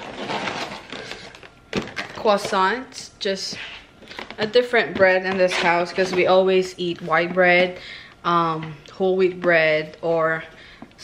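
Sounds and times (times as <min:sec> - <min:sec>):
plastic packaging rustling: 0:00.0 - 0:02.9, 0:03.5 - 0:06.4.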